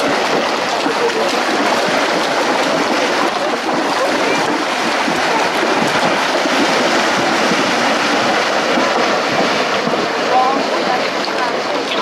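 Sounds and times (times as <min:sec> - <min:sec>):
horses splashing through water: 0:00.0 - 0:12.0.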